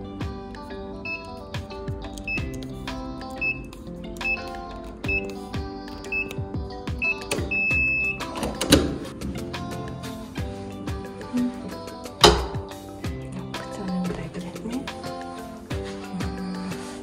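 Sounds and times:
background music: 0.0 - 17.0
keypad lock beeps: 1.1 - 1.4, 2.2 - 2.6, 3.4 - 5.4, 6.1 - 6.4, 7.0 - 8.6
door handle clunk: 7.2 - 9.1, 12.2 - 12.6.

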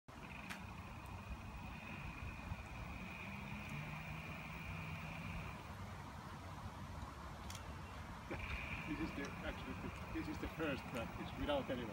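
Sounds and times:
electric drive whine: 0.1 - 5.7
low hum: 0.1 - 6.1.

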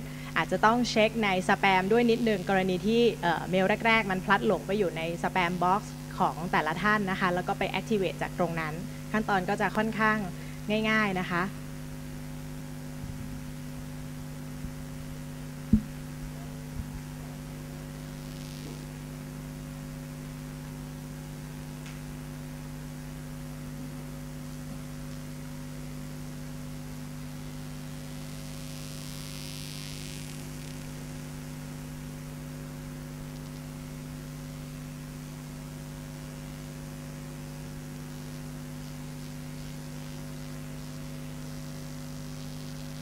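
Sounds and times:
electrical mains hum: 0.0 - 43.0
faint static: 0.0 - 43.0
soft hiss: 11.5 - 18.8, 32.9 - 35.7.

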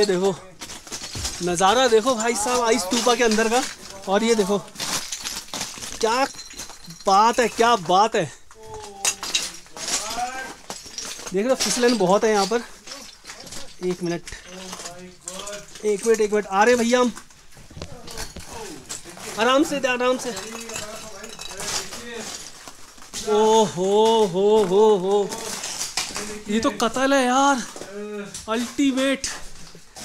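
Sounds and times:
ice chunks clinking on floor: 0.0 - 30.0
footsteps crunching on icy snow: 13.8 - 30.0.

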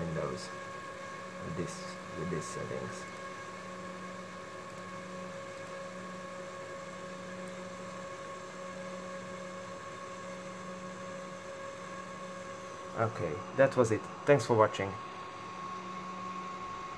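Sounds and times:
computer cooling fans whirring: 0.0 - 16.9.

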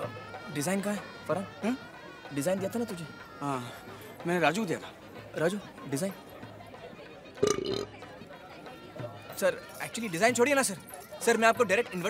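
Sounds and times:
man burping: 7.4 - 7.9.

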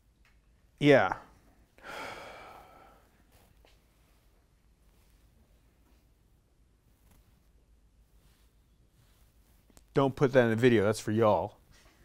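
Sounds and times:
man sighing: 1.8 - 3.0.

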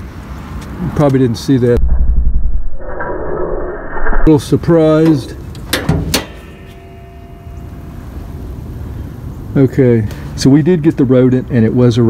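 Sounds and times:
faint steady hum: 4.8 - 10.3.

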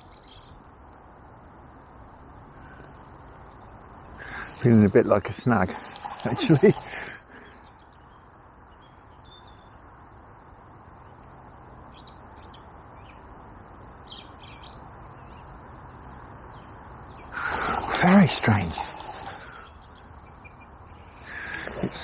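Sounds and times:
small birds chirping: 0.0 - 22.0
steady background hiss: 0.0 - 22.0.

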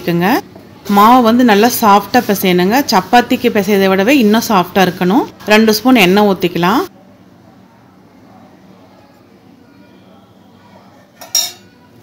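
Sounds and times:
metallic clink against bowl: 11.2 - 11.7.

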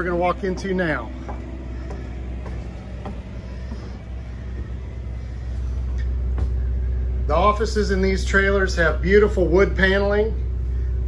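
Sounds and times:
footsteps on metal steps: 0.0 - 7.0
low machine hum: 0.0 - 11.0.

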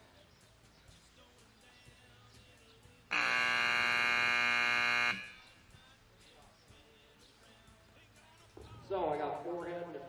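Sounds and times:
timer buzzer blast: 3.1 - 5.5.

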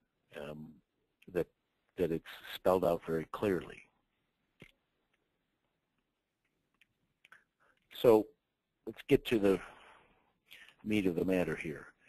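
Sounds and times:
person speaking: 0.3 - 4.8, 7.1 - 12.0.

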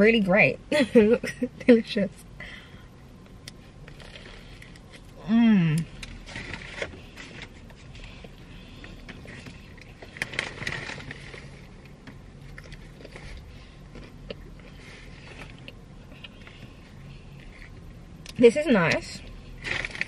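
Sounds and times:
person chewing food: 5.8 - 18.4.

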